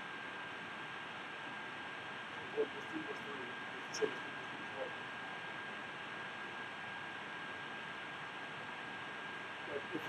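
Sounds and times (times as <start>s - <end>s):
recording noise hiss: 0.0s - 10.0s
thin high whine: 0.0s - 10.0s.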